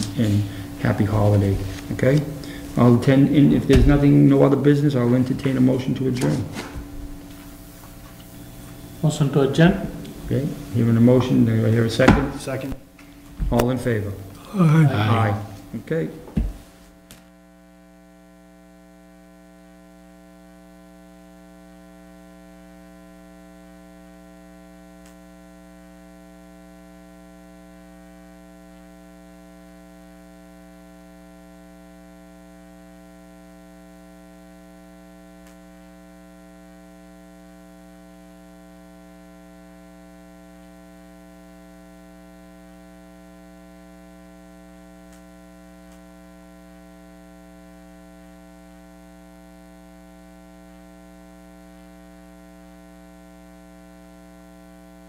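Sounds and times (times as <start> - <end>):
electrical mains hum: 0.0 - 55.0.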